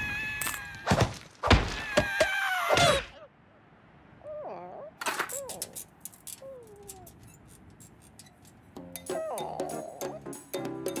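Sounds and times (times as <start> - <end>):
cartoon character vocal sounds: 9.1 - 10.2.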